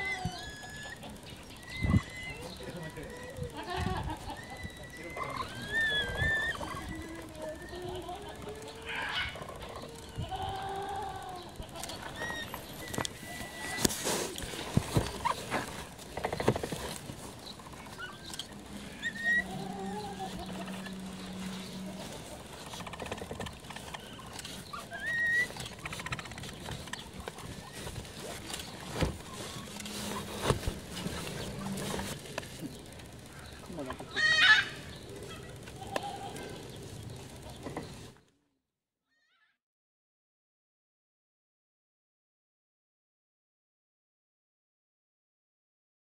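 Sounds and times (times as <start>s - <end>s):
low rustling: 9.3s - 34.1s.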